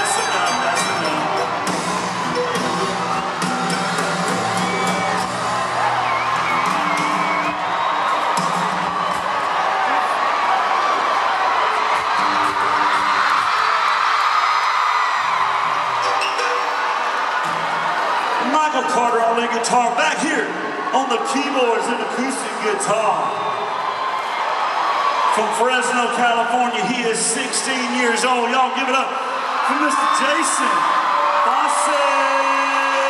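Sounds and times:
country band playing: 0:00.0 - 0:07.7
crowd cheering and whooping: 0:00.0 - 0:33.0.

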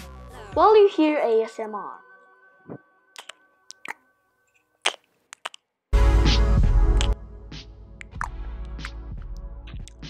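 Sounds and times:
loud music: 0:06.0 - 0:09.4.

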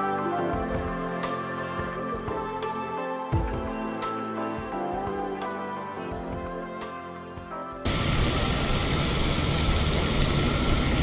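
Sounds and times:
soft background music: 0:00.0 - 0:09.6
rush of outdoor noise: 0:07.8 - 0:11.0.

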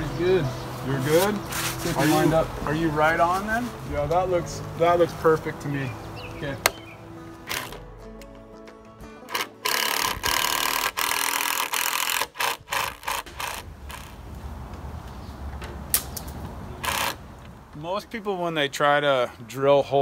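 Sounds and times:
background music: 0:00.0 - 0:14.1
cordless drill driving screws: 0:07.5 - 0:07.8, 0:09.3 - 0:14.2, 0:16.8 - 0:17.2.

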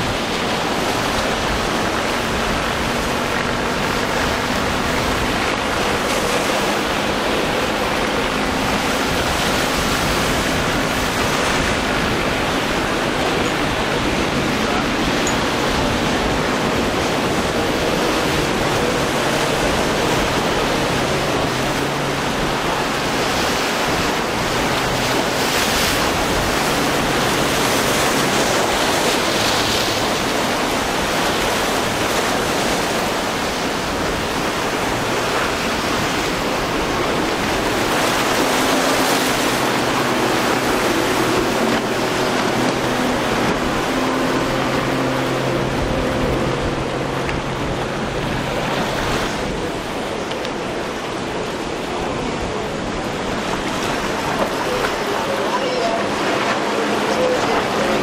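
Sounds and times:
breaking surf: 0:00.0 - 0:58.0
outboard motor droning: 0:00.0 - 0:58.0
wind noise on microphone: 0:00.0 - 0:58.0.

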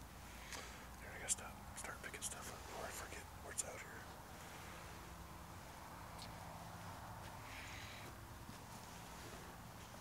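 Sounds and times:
person whispering: 0:01.0 - 0:04.1.

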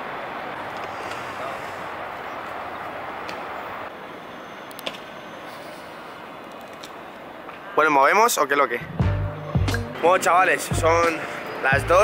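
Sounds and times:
city traffic: 0:00.0 - 0:12.0.

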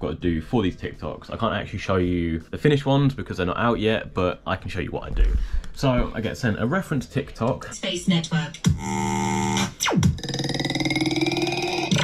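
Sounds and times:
long buzzy pitched tone: 0:08.8 - 0:12.0.

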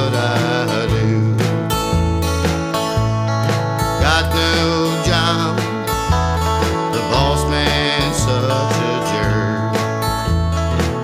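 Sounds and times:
bass line: 0:00.0 - 0:11.0
strummed acoustic guitar: 0:00.0 - 0:11.0.

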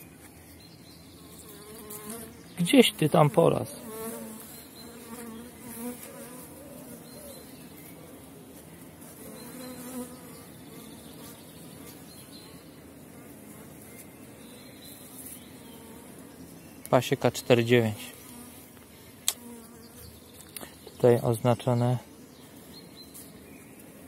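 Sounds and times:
honeybees buzzing: 0:00.0 - 0:24.0.

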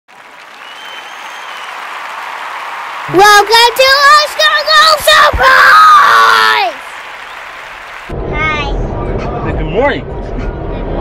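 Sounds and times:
crowd applauding and cheering: 0:00.1 - 0:08.5
high whistle: 0:00.5 - 0:01.8.

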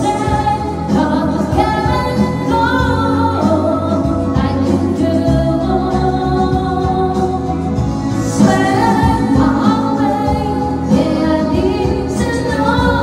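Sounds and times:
woman singing into a microphone: 0:00.0 - 0:13.0.

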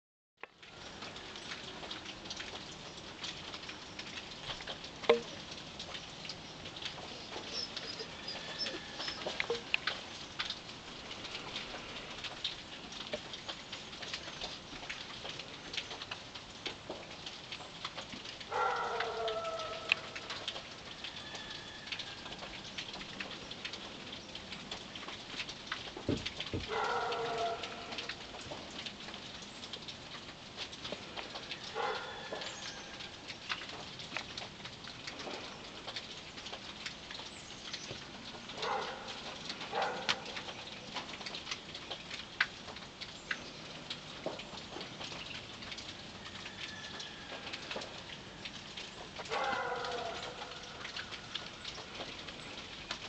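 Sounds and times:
rain falling and dripping: 0:00.4 - 0:53.0.

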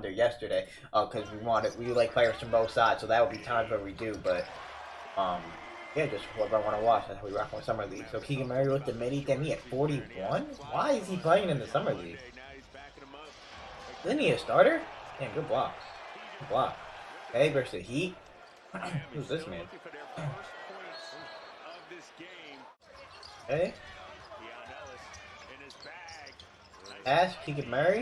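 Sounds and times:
commentator talking: 0:00.0 - 0:04.6, 0:05.2 - 0:15.8, 0:16.4 - 0:18.2, 0:18.8 - 0:22.7, 0:26.9 - 0:28.0.

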